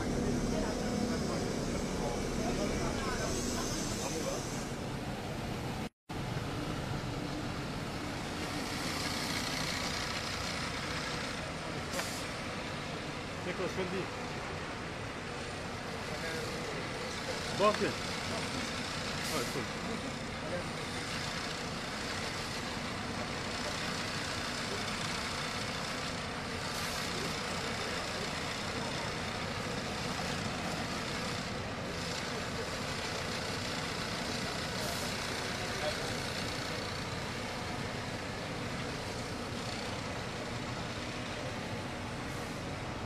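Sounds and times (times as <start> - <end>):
bus engine idling: 0.0 - 43.0.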